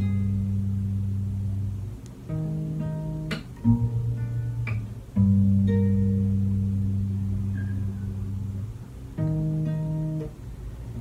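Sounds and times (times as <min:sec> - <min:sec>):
classical guitar chord ringing: 0:00.0 - 0:11.0.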